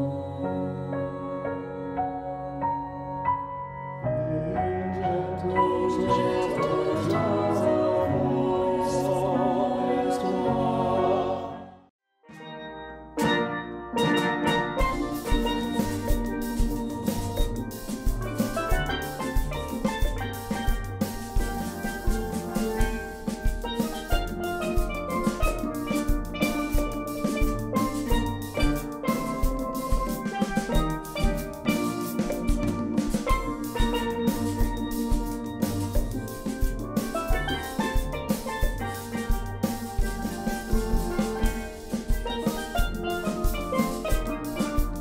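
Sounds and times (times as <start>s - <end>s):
steel pans playing melody: 5.9s - 8.6s, 12.3s - 45.0s
bass pan line: 13.2s - 45.0s
drum kit beat: 14.0s - 45.0s.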